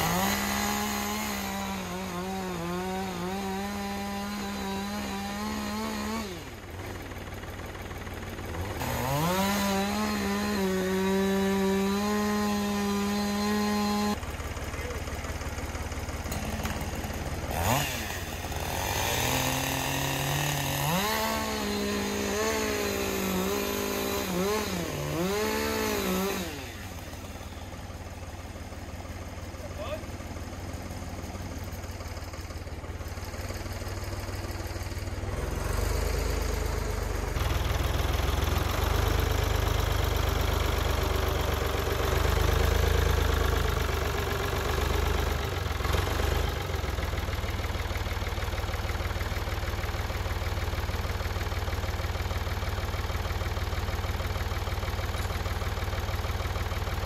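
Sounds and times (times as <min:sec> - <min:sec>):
front loader engine running: 0:00.0 - 0:57.0.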